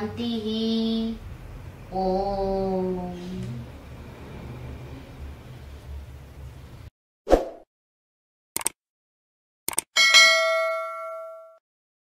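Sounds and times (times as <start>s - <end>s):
notification bell ding: 10.0s - 11.6s.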